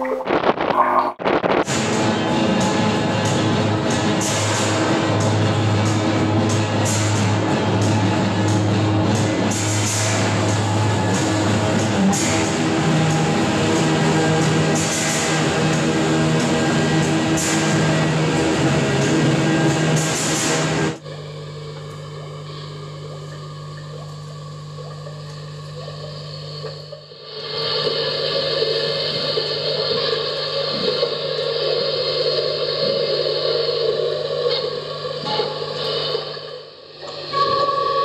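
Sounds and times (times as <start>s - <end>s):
drone: 0.0s - 38.0s
experimental noise music: 0.0s - 38.0s
steady low hum: 0.0s - 38.0s.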